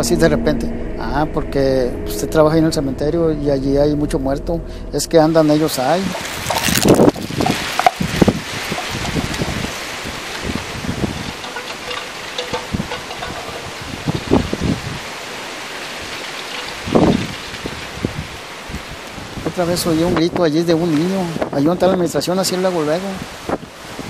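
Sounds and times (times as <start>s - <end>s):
wind blowing: 0.0s - 24.0s.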